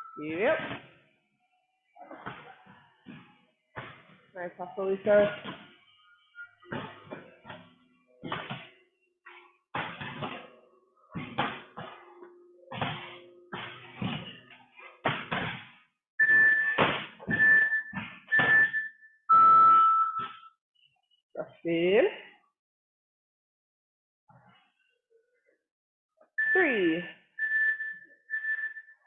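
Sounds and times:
thumps of people exercising: 0:00.2 - 0:01.0, 0:02.0 - 0:05.8, 0:06.6 - 0:20.5
interval timer beeps: 0:16.2 - 0:20.5, 0:26.4 - 0:29.0.

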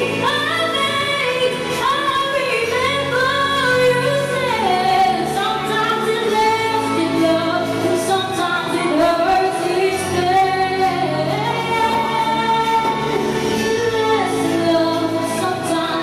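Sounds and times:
musical accompaniment: 0:00.0 - 0:16.0
woman singing slow song: 0:00.0 - 0:16.0.

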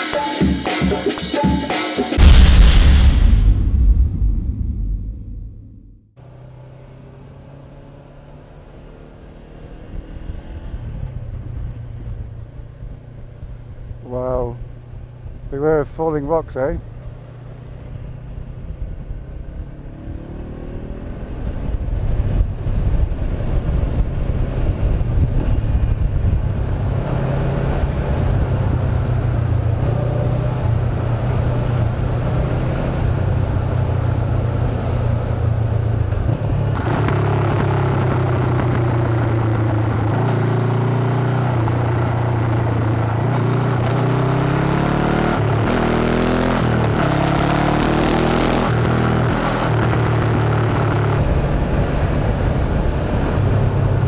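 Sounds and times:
road and wind noise: 0:03.3 - 0:54.0
motorcycle engine accelerating: 0:03.5 - 0:54.0.

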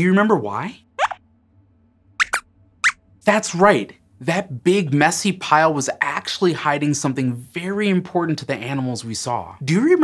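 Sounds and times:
high-pitched rising squeaks: 0:02.2 - 0:03.0.

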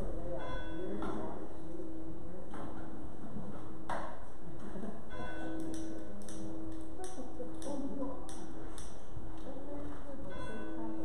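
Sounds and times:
struck bell-like tone: 0:00.2 - 0:01.1, 0:05.1 - 0:06.6, 0:10.2 - 0:11.0.

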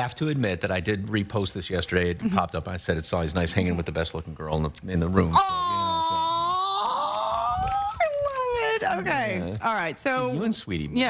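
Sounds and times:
person saying aww: 0:05.3 - 0:08.5.

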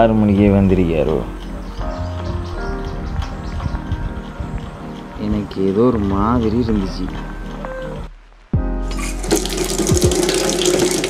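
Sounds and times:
tap water running into sink: 0:09.0 - 0:11.0.

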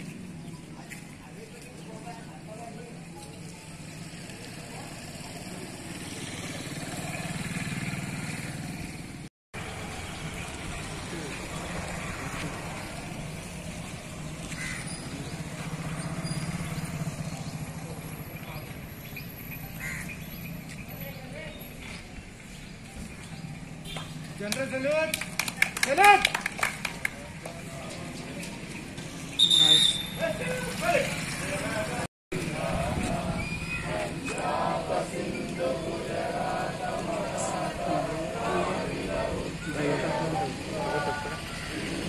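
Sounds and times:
crowd murmur: 0:31.4 - 0:42.0.

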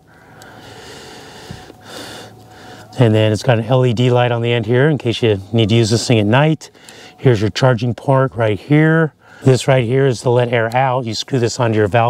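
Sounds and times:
breath: 0:00.0 - 0:02.9, 0:06.8 - 0:07.2, 0:09.2 - 0:09.5.

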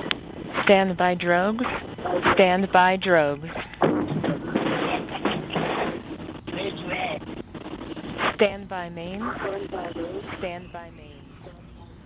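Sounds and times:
steady hiss: 0:00.0 - 0:10.8
radio chatter: 0:00.0 - 0:11.7
indistinct voices: 0:00.0 - 0:12.0.

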